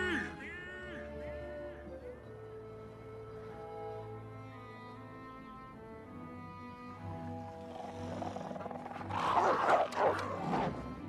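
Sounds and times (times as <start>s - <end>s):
soft orchestral music: 0.0s - 11.0s
animal snarling and growling: 7.3s - 11.0s.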